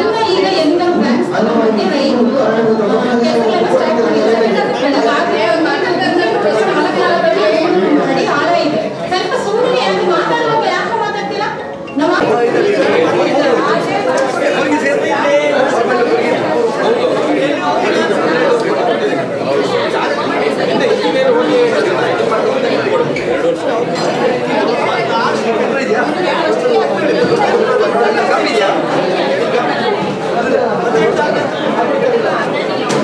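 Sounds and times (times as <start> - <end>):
crowd chatter in a hall: 0.0 - 33.0.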